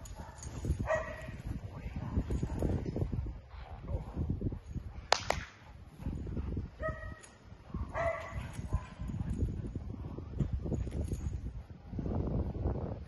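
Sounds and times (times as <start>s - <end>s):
sharp double crack: 5.1s - 5.6s.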